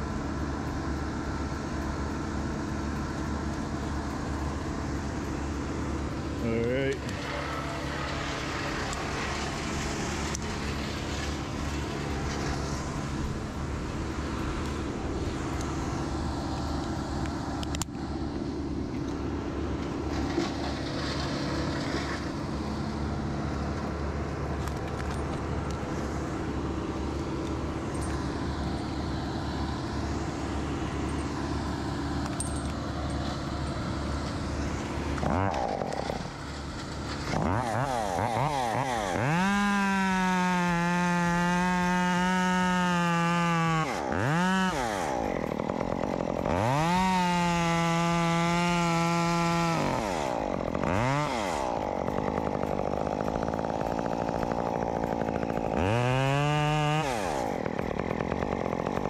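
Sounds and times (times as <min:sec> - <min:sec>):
chainsaw cutting wood: 0:00.0 - 0:59.0
chainsaw idling and revving: 0:00.0 - 0:59.0.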